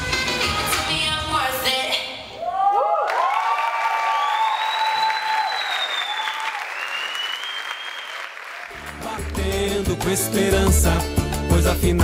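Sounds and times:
music: 0:00.0 - 0:02.2, 0:08.7 - 0:12.0
audience applauding: 0:02.7 - 0:09.4.

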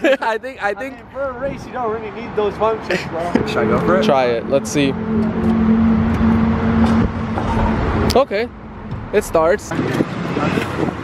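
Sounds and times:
car engine running: 0:03.5 - 0:10.2.

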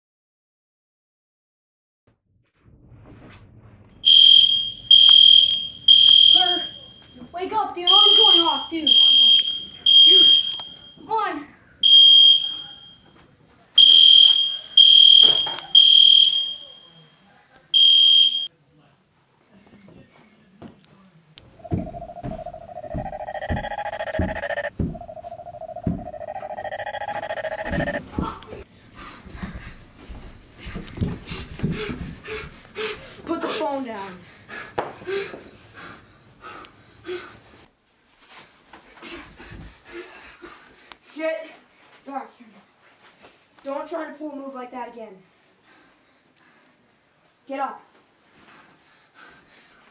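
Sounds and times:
alarm keypad beeps: 0:04.0 - 0:07.1, 0:07.9 - 0:11.0, 0:11.8 - 0:13.0, 0:13.8 - 0:17.0, 0:17.8 - 0:18.5, 0:21.6 - 0:28.0.

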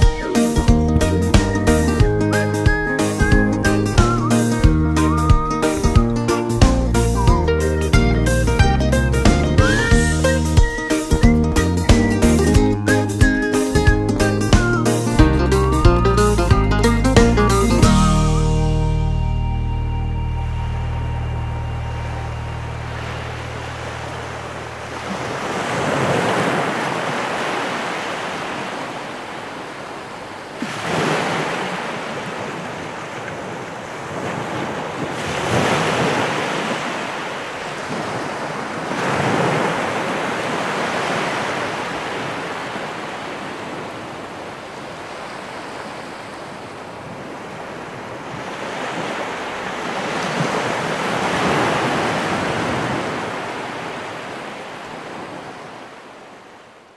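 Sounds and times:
ocean waves breaking: 0:00.0 - 0:07.4, 0:08.0 - 0:56.9
music: 0:00.0 - 0:23.9.

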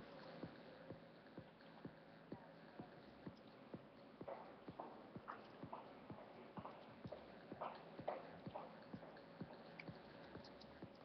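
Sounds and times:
faint steady clicking: 0:00.0 - 0:11.0.

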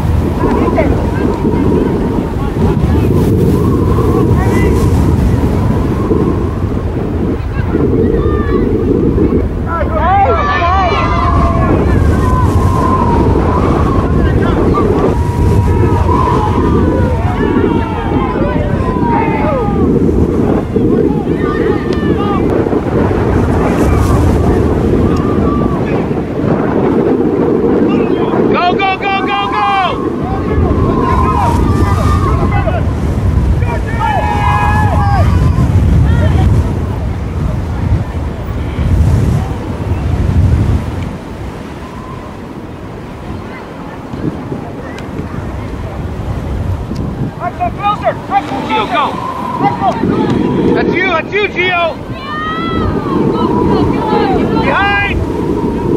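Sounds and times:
distant voices calling out: 0:00.0 - 0:26.4, 0:28.0 - 0:55.9
wind buffeting microphone: 0:00.0 - 0:55.9.

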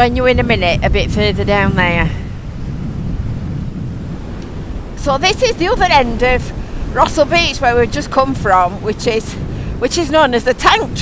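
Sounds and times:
strong wind buffeting microphone: 0:00.0 - 0:11.0.

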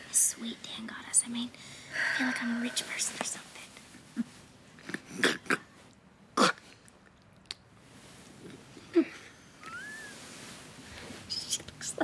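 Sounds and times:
person whispering: 0:00.1 - 0:03.8.

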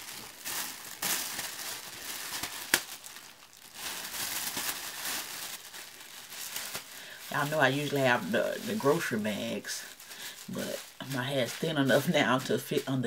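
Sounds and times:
plastic cap crinkling: 0:00.0 - 0:12.7.

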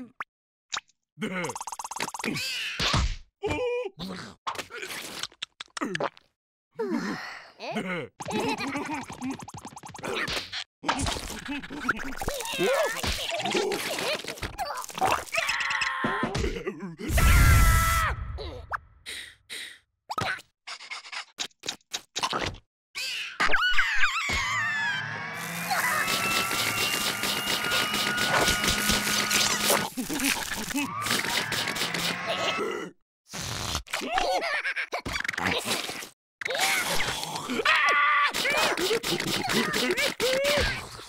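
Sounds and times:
cartoon plops and gulps: 0:08.2 - 0:10.2
cartoon character voices: 0:10.9 - 0:17.4, 0:36.5 - 0:41.0
slurp of noodles: 0:33.3 - 0:33.9.

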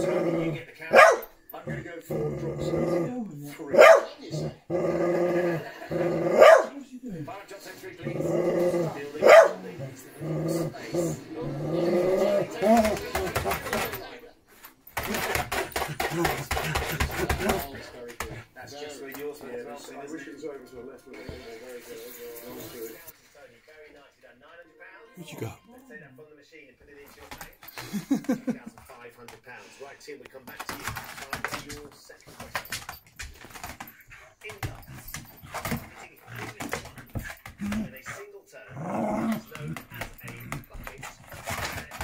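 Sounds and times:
dog growling in play: 0:00.0 - 0:01.1, 0:01.7 - 0:14.0, 0:33.5 - 0:42.0
dog yapping: 0:00.9 - 0:01.3, 0:03.7 - 0:04.6, 0:06.3 - 0:06.8, 0:09.2 - 0:09.6
rustling and scraping on floor: 0:30.3 - 0:38.0, 0:39.2 - 0:42.0.

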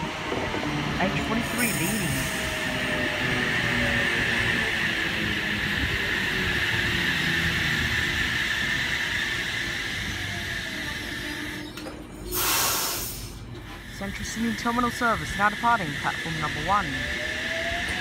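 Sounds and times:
train equipment humming and hissing: 0:00.0 - 0:18.0
loud burst of hiss: 0:12.3 - 0:13.4.

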